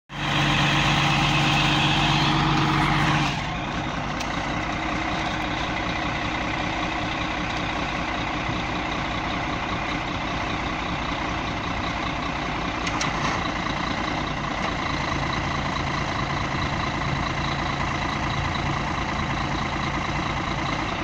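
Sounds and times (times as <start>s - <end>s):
bulldozer diesel engine: 0.1s - 21.0s.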